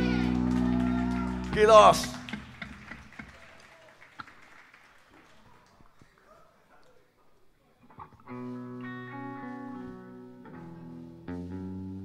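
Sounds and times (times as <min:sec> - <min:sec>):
scattered claps: 0:00.0 - 0:06.2.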